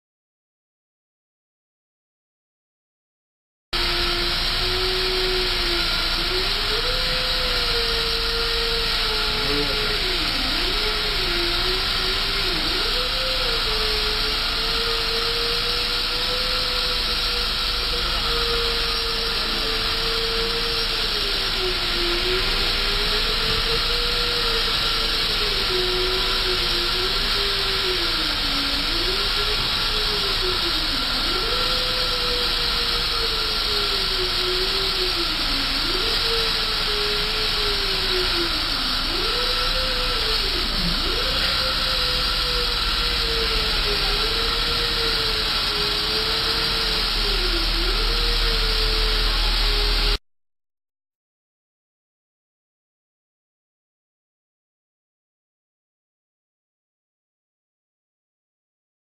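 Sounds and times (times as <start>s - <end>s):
crane engine and hydraulics: 3.8s - 50.2s.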